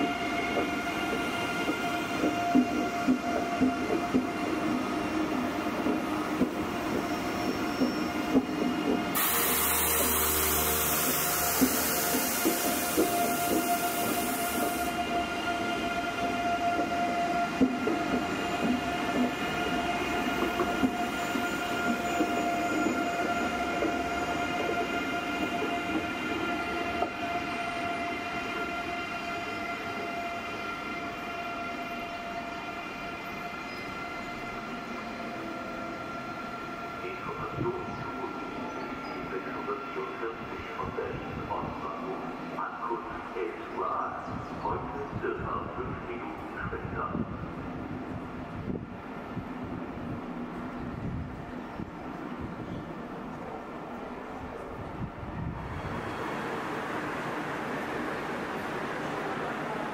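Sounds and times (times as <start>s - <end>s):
electric train traction whine: 0.0s - 40.5s
train wheels rumbling on rail: 0.0s - 59.9s.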